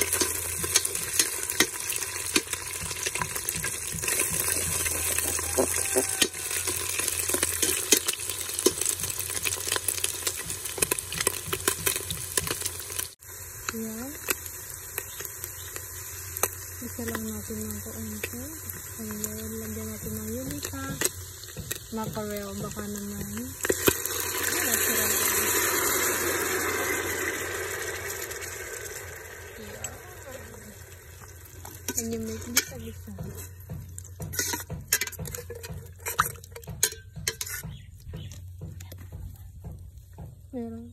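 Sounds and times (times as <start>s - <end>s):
onions sizzling in oil: 0.0s - 40.9s
fish poured into pot: 23.3s - 33.8s
metal spoon scraping pot: 31.6s - 38.4s.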